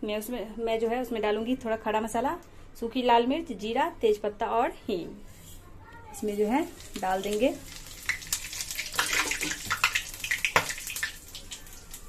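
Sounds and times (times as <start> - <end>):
seeds crackling and popping: 6.2 - 12.0
spices sizzling in hot oil: 6.2 - 12.0.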